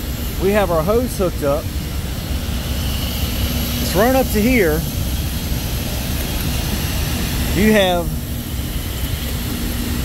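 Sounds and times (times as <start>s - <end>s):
machinery roar: 0.0s - 10.0s.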